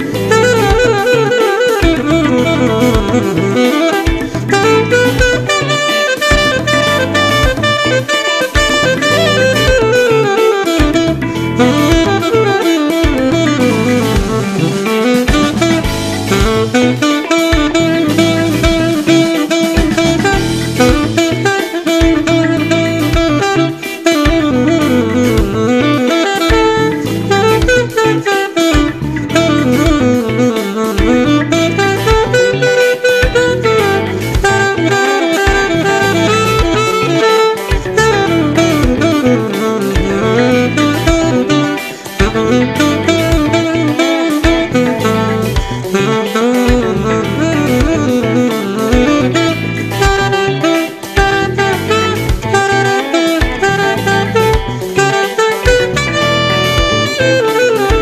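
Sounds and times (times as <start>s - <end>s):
electric guitar and drums backing: 0.0s - 58.0s
saxophone funk solo: 0.0s - 58.0s.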